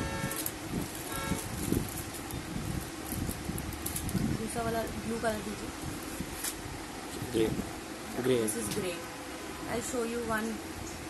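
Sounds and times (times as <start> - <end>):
steady background noise: 0.0 - 11.0
cellophane crinkling: 0.3 - 4.2.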